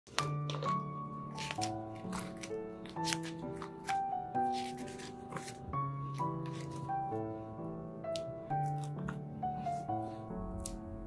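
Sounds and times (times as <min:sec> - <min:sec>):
paper rustling: 0:00.1 - 0:07.3
background music with sustained notes: 0:00.1 - 0:11.0.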